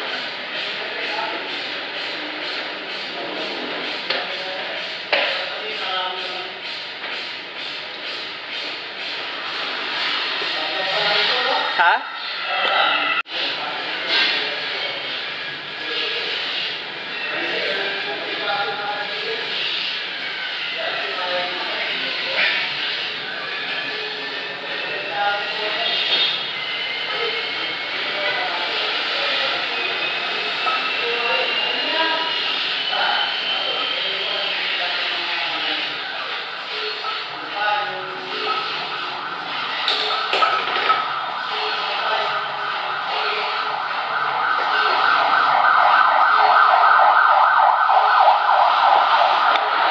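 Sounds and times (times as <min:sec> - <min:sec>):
faint voices: 0:00.0 - 0:49.9
emergency vehicle siren warbling: 0:26.4 - 0:49.9.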